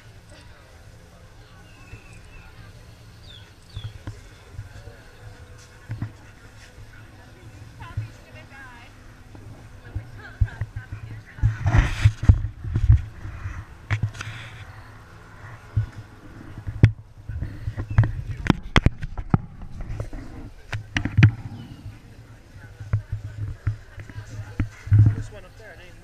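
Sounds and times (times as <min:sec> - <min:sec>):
indistinct voices: 0:00.0 - 0:26.0.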